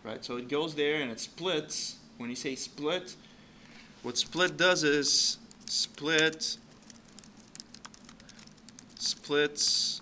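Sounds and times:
typing on a computer keyboard: 0:05.5 - 0:09.4.

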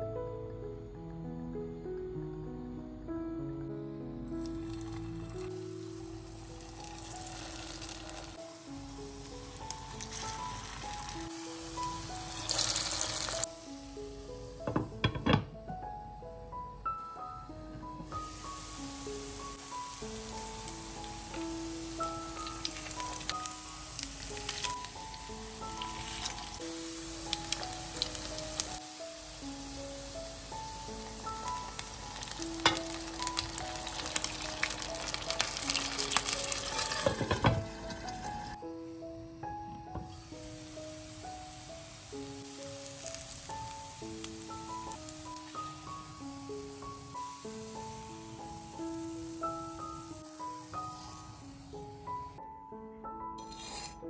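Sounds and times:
soft melodic background music: 0:00.0 - 0:54.0
patties sizzling in hot oil: 0:04.4 - 0:15.4, 0:17.9 - 0:38.6, 0:40.0 - 0:52.4, 0:53.4 - 0:54.0.

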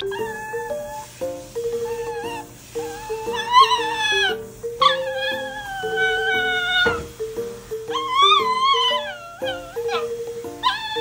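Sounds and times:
pet's high-pitched cries: 0:00.0 - 0:07.1, 0:07.8 - 0:11.0
background music simple melody: 0:00.0 - 0:11.0.

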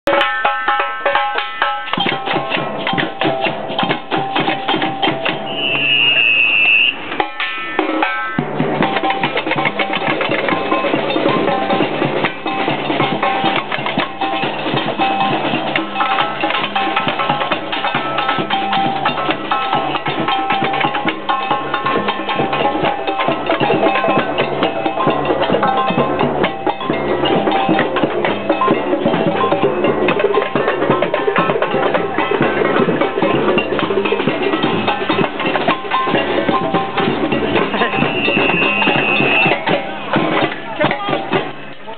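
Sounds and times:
drums and hand percussion: 0:00.0 - 0:41.9
short high shrill tone: 0:05.4 - 0:08.4, 0:37.8 - 0:39.7.

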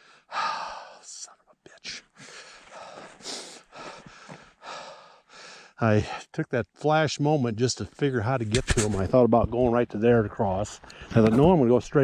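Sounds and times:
man breathing hard: 0:00.0 - 0:01.0, 0:01.9 - 0:05.8.

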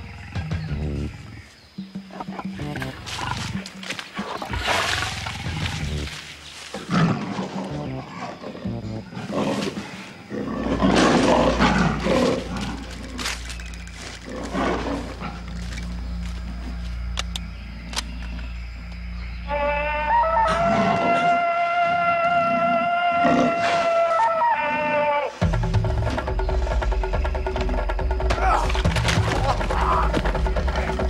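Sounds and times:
background music: 0:00.0 - 0:09.4, 0:25.3 - 0:31.0
lion roaring: 0:02.8 - 0:13.5, 0:14.2 - 0:15.7.

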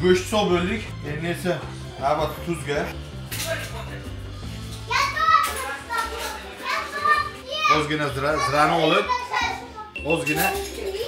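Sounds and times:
children talking and calling out: 0:04.8 - 0:11.0.

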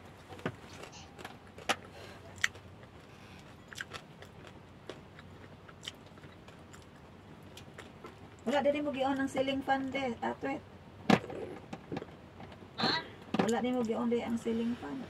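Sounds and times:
quiet chewing: 0:00.4 - 0:08.5.

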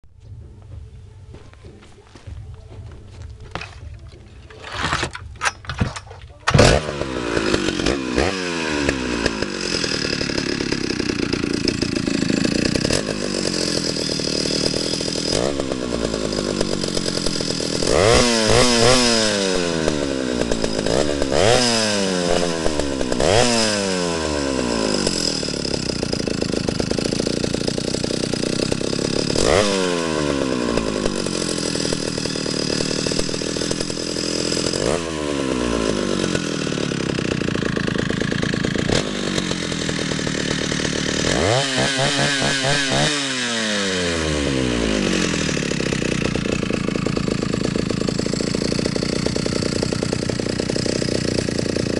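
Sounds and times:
chainsaw idling and revving: 0:06.5 - 0:51.9.

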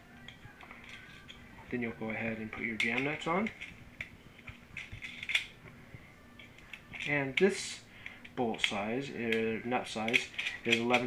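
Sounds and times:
light handling noise: 0:00.1 - 0:11.0
small metal clicks: 0:00.2 - 0:01.4, 0:02.6 - 0:05.6, 0:06.4 - 0:11.0.

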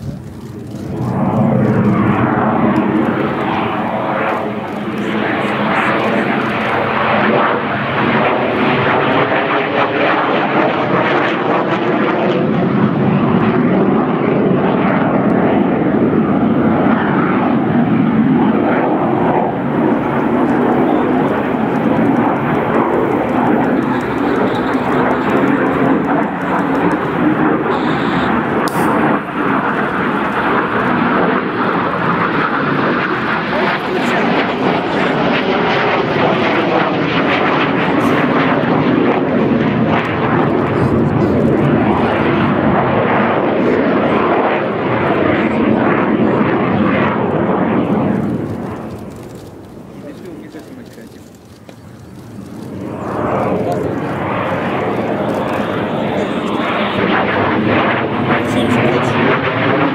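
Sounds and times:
jet engines roaring: 0:00.0 - 0:59.9.

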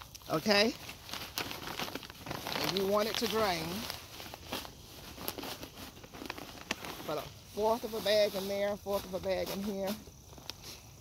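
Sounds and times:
granules rustling into a pot: 0:00.0 - 0:10.9.

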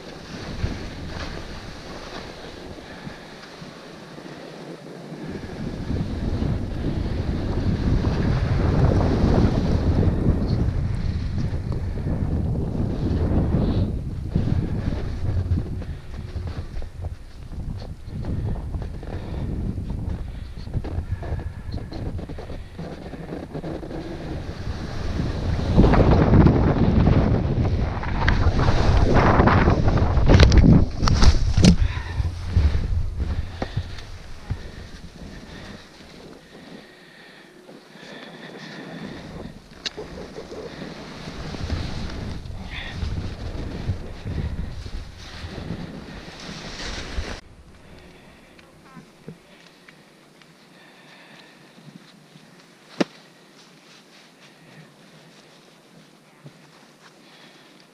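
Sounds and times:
wind buffeting microphone: 0:00.0 - 0:03.4, 0:04.3 - 0:49.4.

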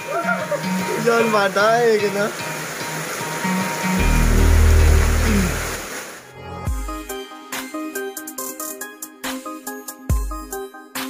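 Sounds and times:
heavy rain hissing: 0:00.0 - 0:06.3
deep bass swell: 0:04.0 - 0:05.9
electronic music: 0:04.0 - 0:05.9.

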